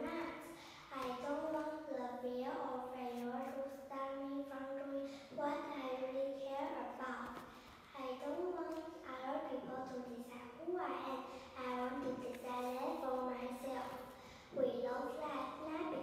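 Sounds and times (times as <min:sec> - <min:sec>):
girl reciting into a microphone: 0:00.0 - 0:16.0.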